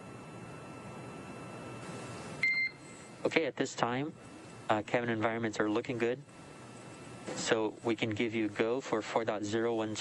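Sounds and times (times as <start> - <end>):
radio loop hiss: 0.0 - 10.0
short high beep: 2.4 - 2.9.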